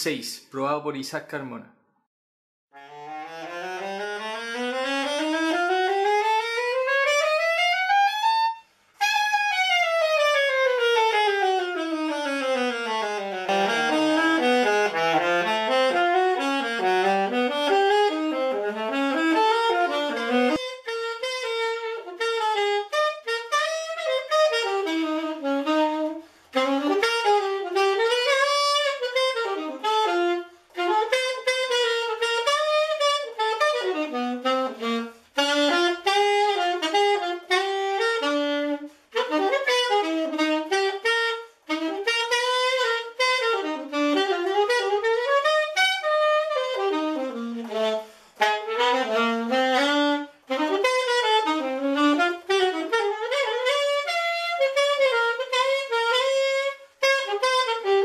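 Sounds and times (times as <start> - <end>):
alto saxophone solo: 2.7 - 58.0.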